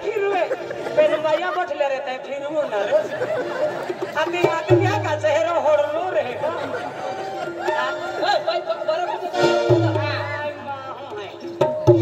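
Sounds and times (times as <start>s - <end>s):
music: 6.8s - 12.0s.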